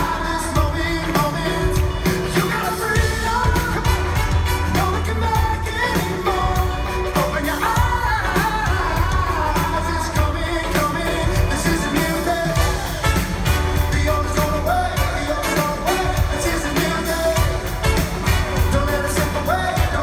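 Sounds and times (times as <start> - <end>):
live pop-rock band with singer: 0.0 - 20.0.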